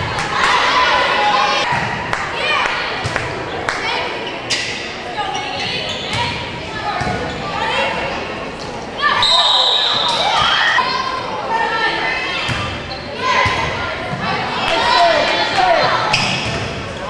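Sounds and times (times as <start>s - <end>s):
echoing shouts: 0.0s - 4.4s, 9.0s - 16.4s.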